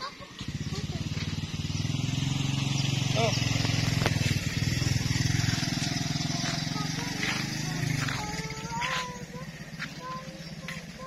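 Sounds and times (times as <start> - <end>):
small engine droning: 0.0 - 11.0.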